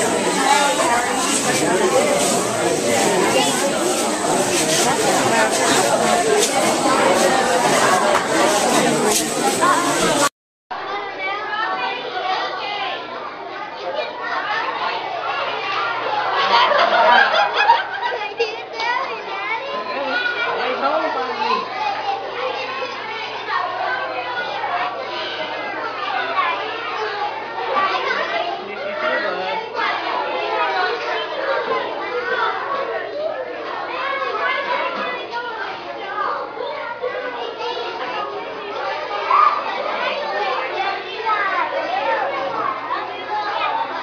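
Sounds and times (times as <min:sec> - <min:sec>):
children chattering excitedly: 0:00.0 - 0:44.0.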